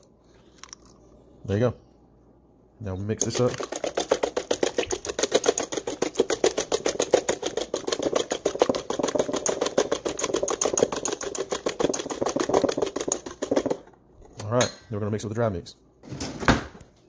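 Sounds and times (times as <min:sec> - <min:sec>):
whisk clicking against metal bowl: 0:03.2 - 0:13.9.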